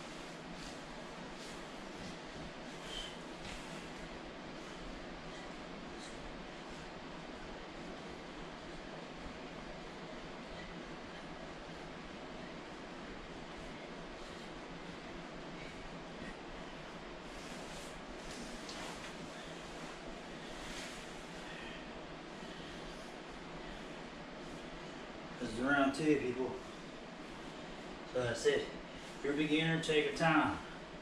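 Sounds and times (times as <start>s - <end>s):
room noise hiss: 0.0s - 31.0s
plastic suit rustling: 17.2s - 21.4s.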